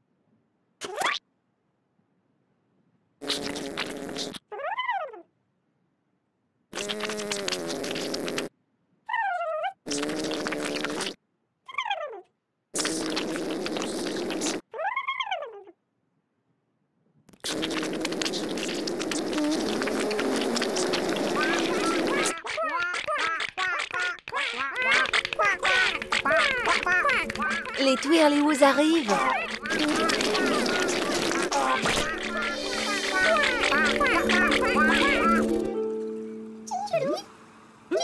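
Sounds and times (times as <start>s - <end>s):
squeaky cartoon chirps: 0.8s - 1.2s, 18.2s - 36.0s, 36.6s - 37.3s
buzzy rasping cartoon drone: 24.6s - 37.2s.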